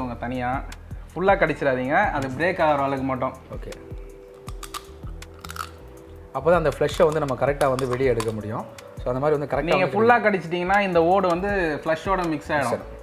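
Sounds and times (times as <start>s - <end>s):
background music chord: 0.0s - 13.0s
crab shell cracking by hand: 4.3s - 5.9s, 6.9s - 8.5s
man talking: 6.4s - 13.0s.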